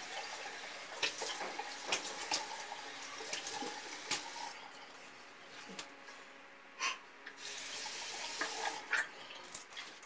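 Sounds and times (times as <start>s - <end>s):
tap water running into basin: 0.0s - 5.0s, 7.3s - 10.0s.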